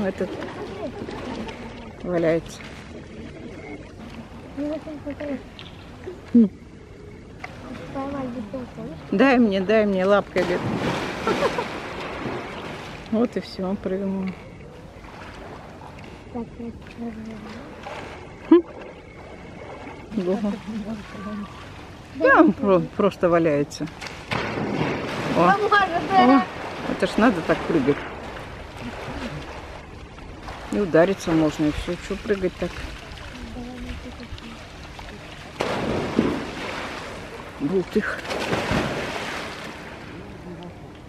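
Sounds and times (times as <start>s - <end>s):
water sloshing and splashing: 0.0s - 41.0s
loud splash into water: 10.4s - 13.0s, 24.1s - 29.5s, 35.5s - 40.2s.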